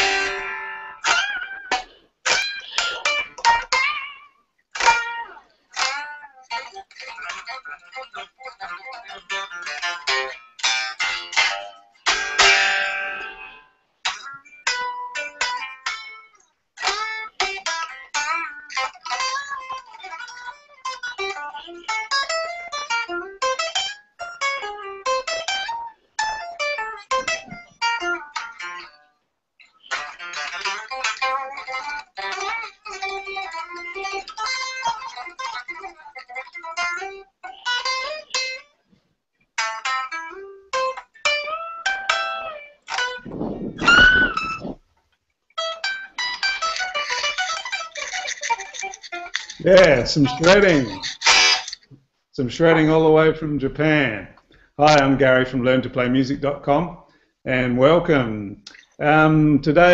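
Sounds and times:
loud strummed guitar chord: 0:00.0 - 0:02.0
electric guitar shredding: 0:00.0 - 0:38.7, 0:39.6 - 0:44.9, 0:45.6 - 0:53.8.

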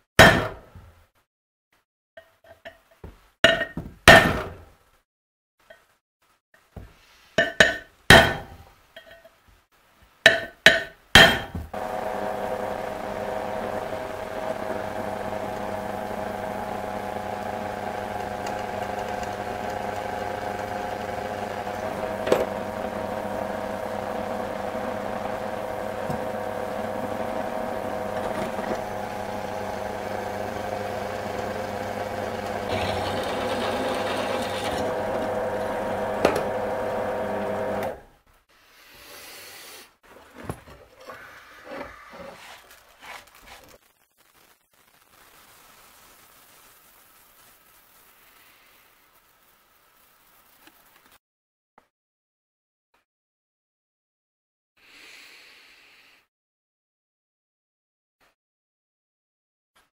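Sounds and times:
drill press drilling steel: 0:11.8 - 0:38.0.

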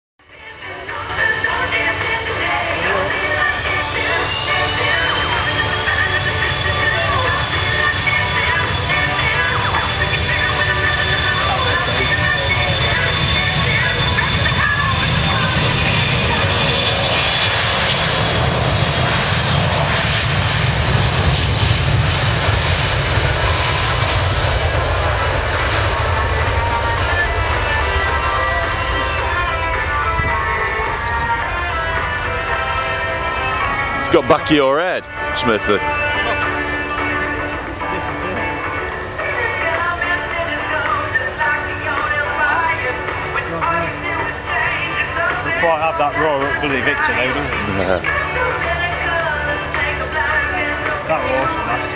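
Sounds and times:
high engine whine: 0:00.2 - 0:51.9
jet engines at high power: 0:00.4 - 0:51.9.

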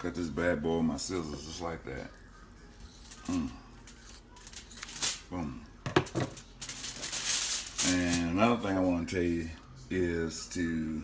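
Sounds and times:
aluminium foil crinkling: 0:01.2 - 0:05.5, 0:06.2 - 0:08.6.

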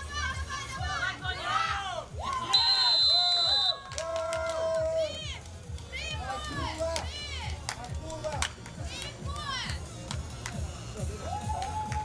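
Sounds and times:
spectators chanting and shouting: 0:00.0 - 0:07.6
referee's whistle blast: 0:02.5 - 0:03.8.

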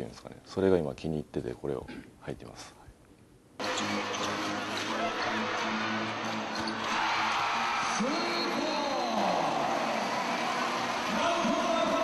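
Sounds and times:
arena crowd cheering: 0:03.6 - 0:12.0.

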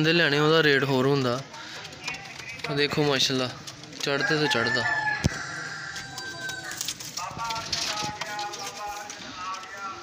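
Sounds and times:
pigeon wings flapping: 0:06.2 - 0:10.0.

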